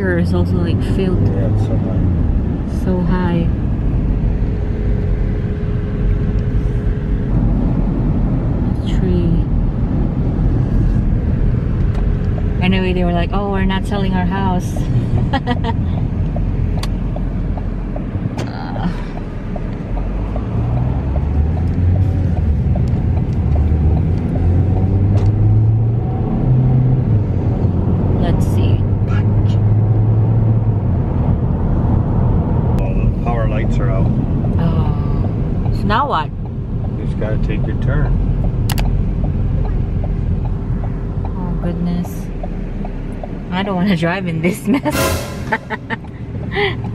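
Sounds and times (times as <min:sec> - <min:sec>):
car engine accelerating: 0:00.0 - 0:46.9.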